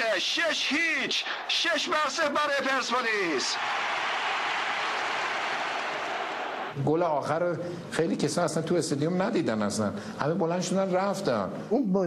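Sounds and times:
stadium crowd cheering: 0.0s - 6.9s.

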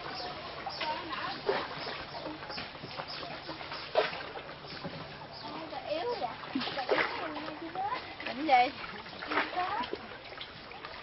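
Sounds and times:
water splashing around boats: 0.0s - 11.0s.

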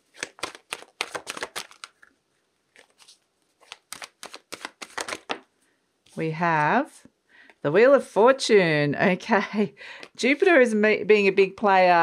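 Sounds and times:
cards shuffled by hand: 0.0s - 2.1s, 2.7s - 5.5s.

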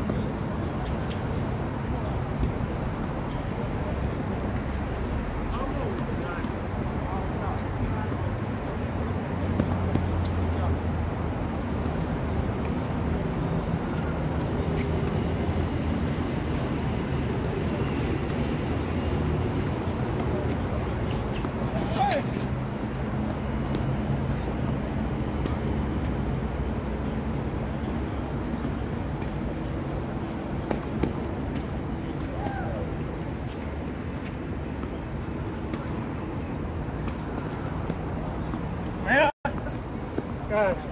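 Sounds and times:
highway traffic rumble: 0.0s - 40.9s.

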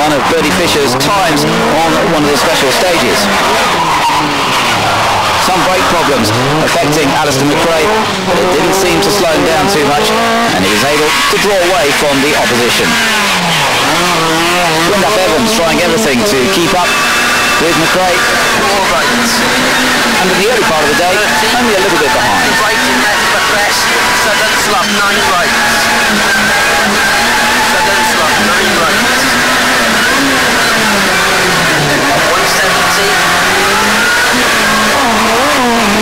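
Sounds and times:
road noise: 0.0s - 36.0s
rally car passing at speed: 0.4s - 11.4s, 12.5s - 36.0s.

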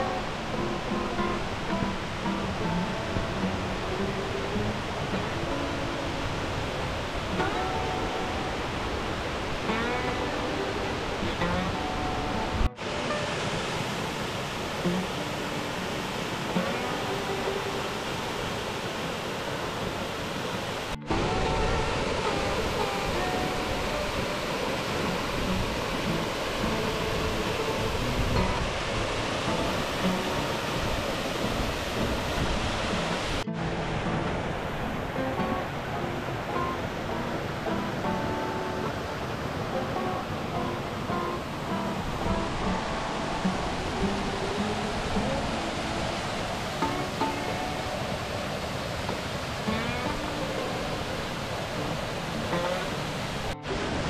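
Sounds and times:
music with picked notes: 0.0s - 18.8s, 21.0s - 54.0s
waterfall rushing: 0.0s - 54.0s.

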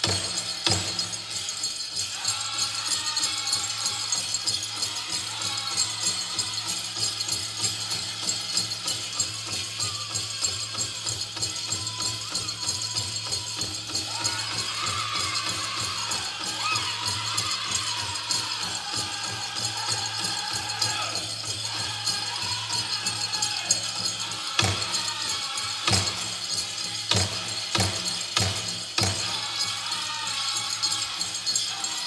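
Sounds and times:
drum group singing: 0.0s - 32.0s
leg bells jingling: 0.0s - 32.0s.

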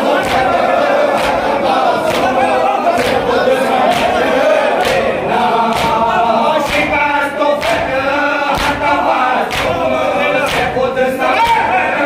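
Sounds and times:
men chanting in unison: 0.0s - 12.0s
rhythmic chest-beating thumps: 0.0s - 12.0s.

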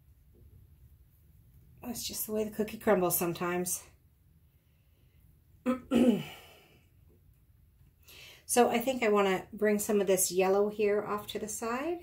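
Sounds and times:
woman sighing: 5.9s - 6.8s.

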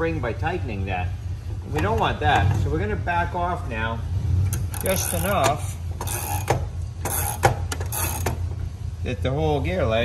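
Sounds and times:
steady low hum: 0.0s - 10.0s
wrench clicking on metal nut: 4.5s - 8.4s.

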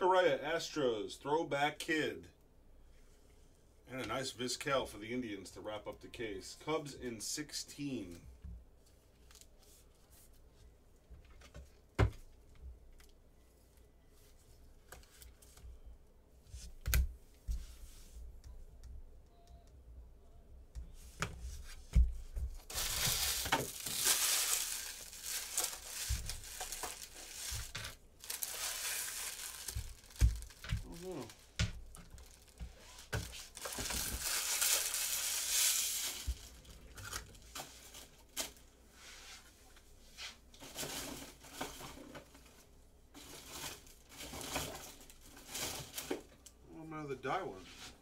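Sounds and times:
packaging crinkling: 22.6s - 38.6s.

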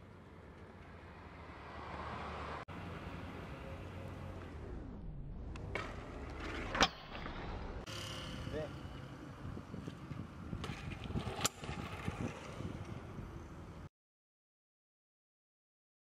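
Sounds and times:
street traffic hum: 0.0s - 13.9s.

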